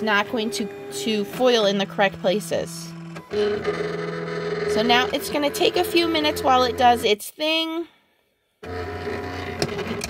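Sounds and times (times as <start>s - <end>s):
cutting machine motors humming: 0.0s - 7.1s, 8.6s - 10.0s.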